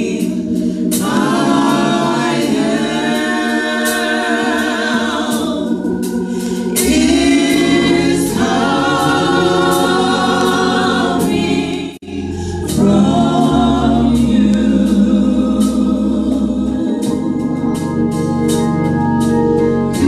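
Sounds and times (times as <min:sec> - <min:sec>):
gospel choir singing in harmony: 0:00.0 - 0:20.0.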